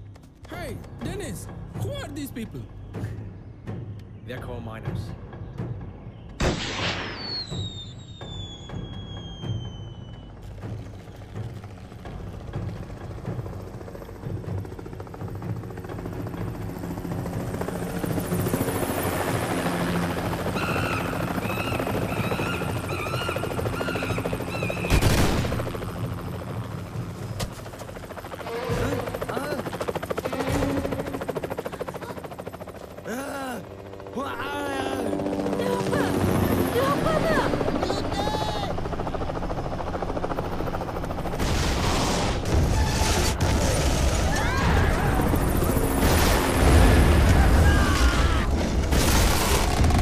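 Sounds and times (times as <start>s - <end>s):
high falling whistle: 7.1s - 10.3s
helicopter rotor noise: 7.4s - 50.0s.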